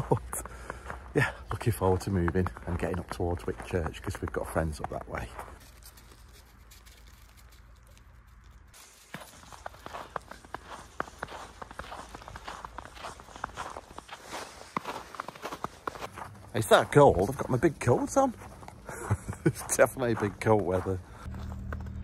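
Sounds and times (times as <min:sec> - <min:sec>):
footsteps crunching on snow: 0:00.0 - 0:22.0.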